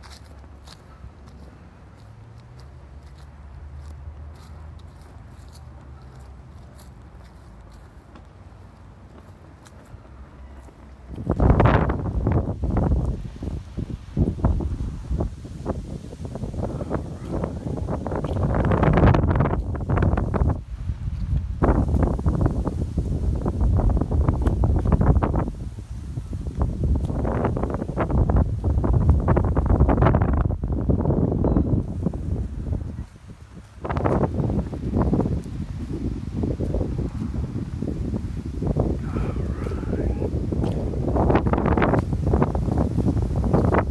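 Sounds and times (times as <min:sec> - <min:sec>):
wind buffeting microphone: 0:00.0 - 0:43.9.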